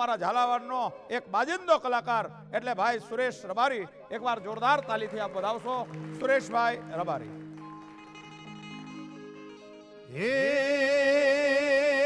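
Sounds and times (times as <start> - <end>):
harmonium playing softly: 0.0 - 11.8.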